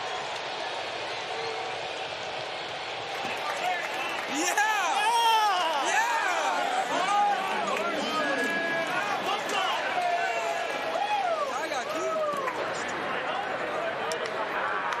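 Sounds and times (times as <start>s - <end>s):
crowd murmur: 3.2s - 15.0s
men shouting and whooping: 4.2s - 12.5s.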